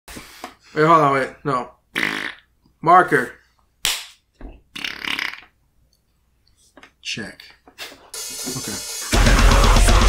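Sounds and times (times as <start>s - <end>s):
rough throat sound: 1.9s - 2.5s, 4.7s - 5.6s.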